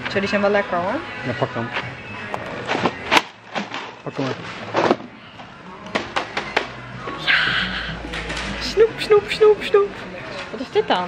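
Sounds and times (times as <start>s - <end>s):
background music: 0.0s - 11.0s
voices: 7.0s - 11.0s.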